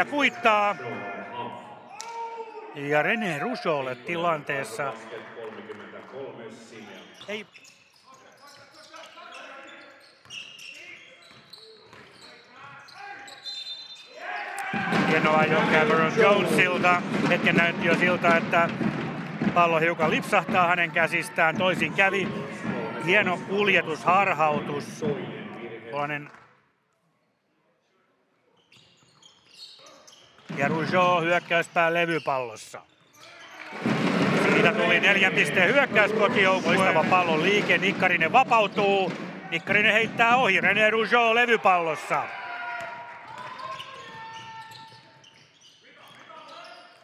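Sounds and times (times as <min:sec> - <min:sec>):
voices echoing in hall: 0:00.0 - 0:27.1, 0:29.6 - 0:47.0
faint basketball game sounds: 0:01.6 - 0:47.0
person speaking: 0:02.8 - 0:04.8
basketball bouncing on court: 0:14.7 - 0:23.5, 0:33.7 - 0:41.1.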